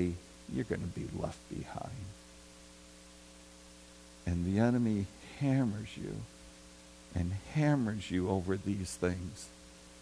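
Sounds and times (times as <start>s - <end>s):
electrical mains hum: 0.0s - 10.0s
light hiss: 0.0s - 10.0s.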